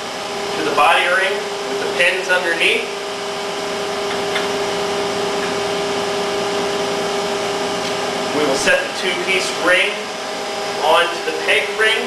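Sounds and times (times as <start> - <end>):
machinery electric hum: 0.0 - 12.0.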